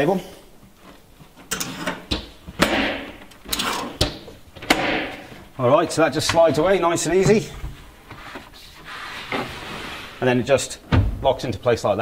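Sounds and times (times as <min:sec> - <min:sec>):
scraping and rustling: 0:06.4 - 0:10.5.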